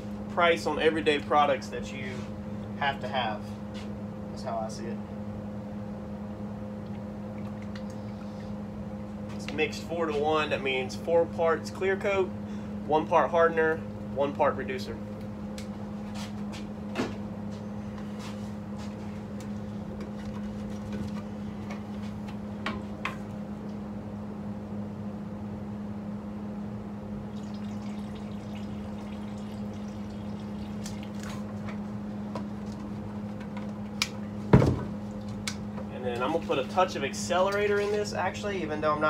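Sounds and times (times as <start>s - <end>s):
steady low hum: 0.0s - 39.0s
liquid pouring into plastic cup: 27.3s - 31.5s.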